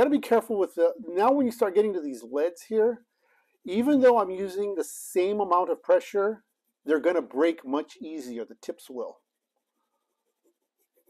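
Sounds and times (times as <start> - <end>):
pencil scratching on paper: 5.2 - 7.8, 9.2 - 11.0.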